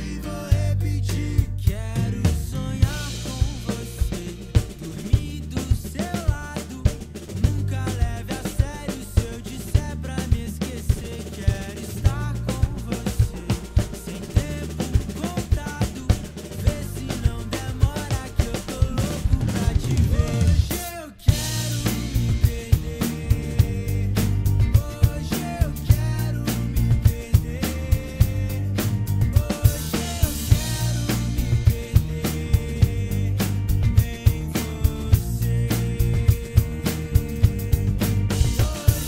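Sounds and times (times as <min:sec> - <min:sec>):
drum kit playing: 0:00.0 - 0:39.0
pop-rock backing track: 0:00.0 - 0:39.0.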